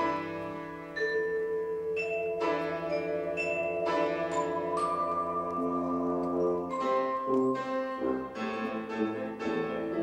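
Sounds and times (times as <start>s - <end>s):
piano: 0.0s - 10.0s
vibraphone: 0.0s - 10.0s
tuba low sustained notes: 3.8s - 10.0s.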